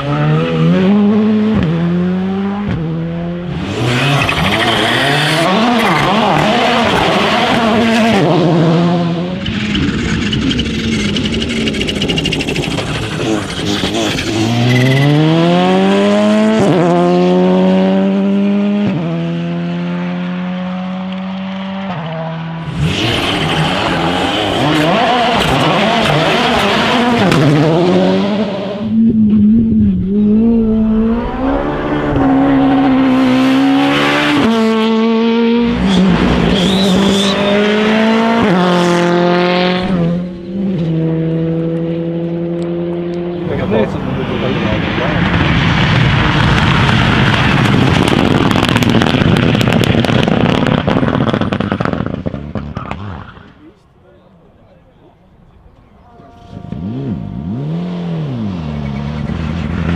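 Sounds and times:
cars rushing past: 0:00.0 - 0:59.9
rally car engines revving: 0:00.0 - 0:59.9.

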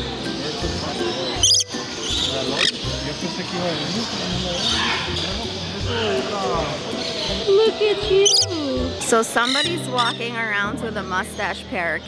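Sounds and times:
hall chatter: 0:00.0 - 0:12.0
parrot screeching: 0:01.4 - 0:02.8.

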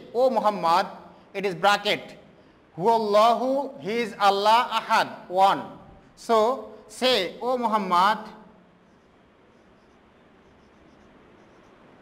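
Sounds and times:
room hiss: 0:00.0 - 0:12.0
marker squeaking on whiteboard: 0:08.8 - 0:11.8.

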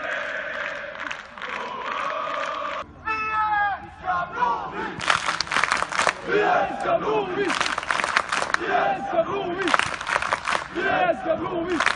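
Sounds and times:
crowd chanting: 0:00.0 - 0:02.8, 0:04.0 - 0:11.9
man shouting: 0:03.0 - 0:04.3.

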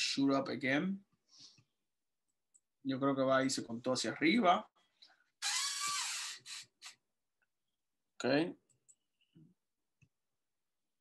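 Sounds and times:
man hissing into microphone: 0:05.4 - 0:07.0.

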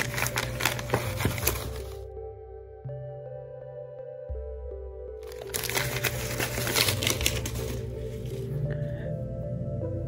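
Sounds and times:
paper crinkling and rustling: 0:00.0 - 0:02.1, 0:05.2 - 0:08.6
soft background music: 0:00.0 - 0:10.0.

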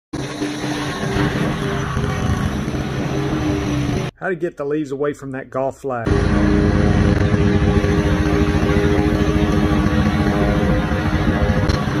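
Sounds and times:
riding lawn mower mulching leaves: 0:00.2 - 0:04.1, 0:06.1 - 0:12.0.

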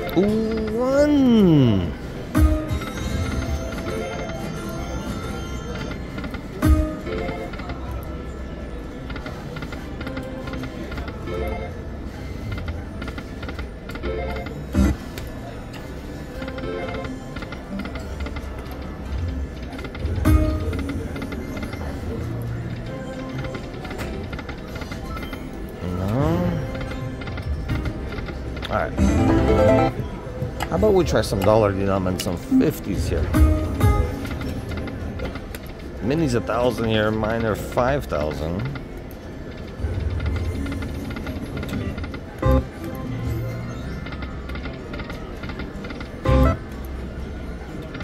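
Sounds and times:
slot machine game music: 0:00.0 - 0:08.6, 0:13.6 - 0:48.0.

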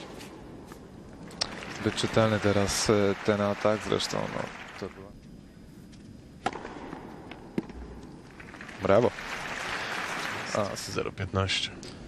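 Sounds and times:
quiet arena background: 0:00.0 - 0:12.0
tennis ball struck by racket: 0:06.4 - 0:08.0.

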